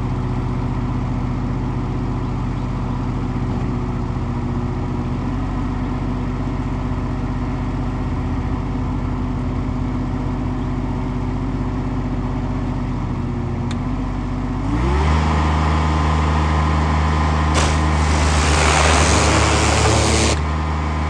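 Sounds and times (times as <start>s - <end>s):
diesel engine running: 0.0s - 21.0s.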